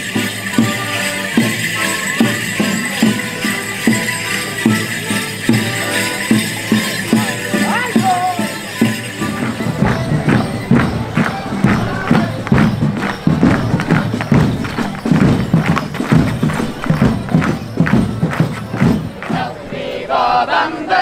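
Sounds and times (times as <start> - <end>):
leg bells jingling: 0.0 - 21.0
melodeon and band dance tune: 0.0 - 21.0.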